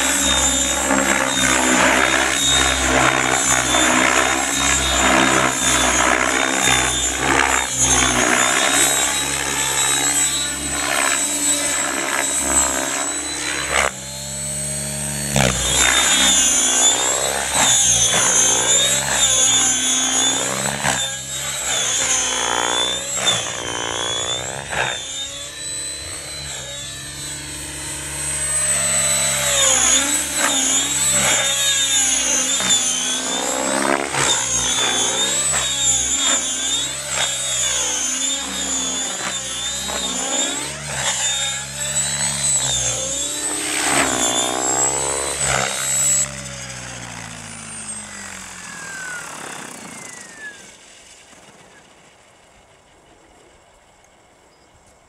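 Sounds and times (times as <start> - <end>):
model helicopter motor whine and rotor: 0.0 - 55.0.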